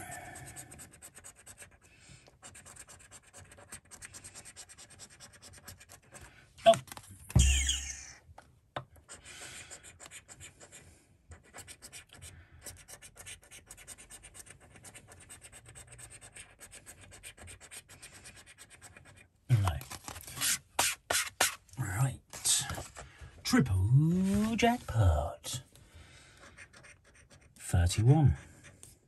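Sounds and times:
coin scratching scratchcard: 19.9 - 21.7.

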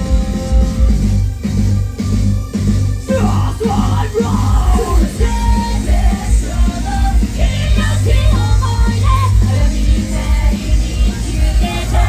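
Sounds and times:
heavy bass and drum beat: 0.0 - 12.0
pop rock song over loudspeakers: 0.0 - 12.0
women singing and shouting: 4.2 - 12.0.

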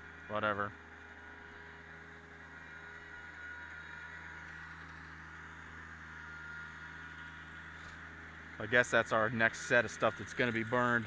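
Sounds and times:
tractor diesel engine running: 0.0 - 11.0.

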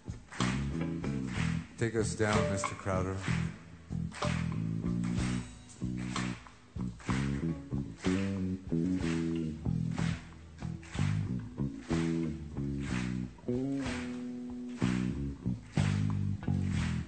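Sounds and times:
electric bass guitar solo: 0.4 - 17.0
drum hits: 2.2 - 3.1.

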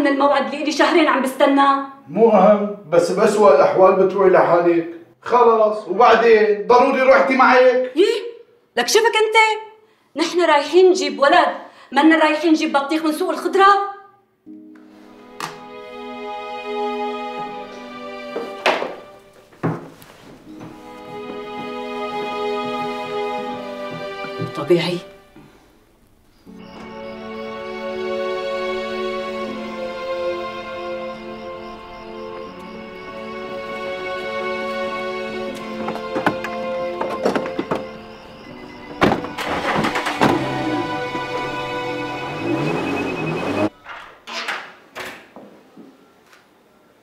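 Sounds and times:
background music: 0.0 - 9.5, 10.2 - 44.3
knock: 18.4 - 19.0, 19.6 - 19.9
bedclothes rustling: 18.4 - 26.4
car door shutting: 38.9 - 41.6.

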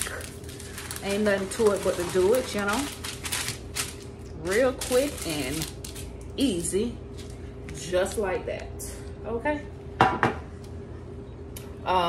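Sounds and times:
faint steady room hum: 0.0 - 12.0.

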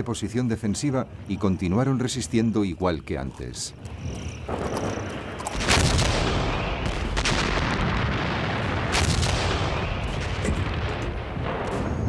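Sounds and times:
gunfire and artillery rumble: 4.4 - 12.0
loud blast: 5.6 - 12.0.

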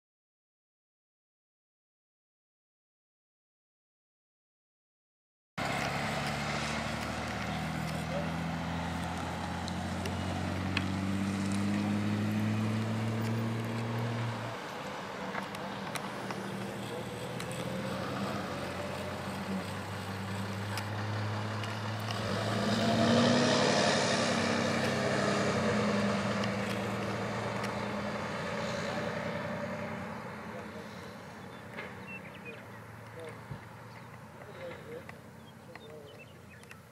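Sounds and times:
vehicle engines humming: 5.6 - 36.9
vehicle passing: 5.6 - 36.9.

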